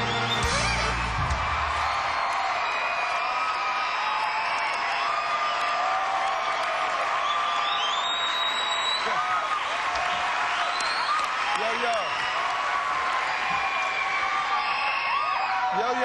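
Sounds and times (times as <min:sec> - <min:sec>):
band's bass-heavy chord: 0:00.0 - 0:01.6
audience cheering and applauding: 0:00.0 - 0:16.0.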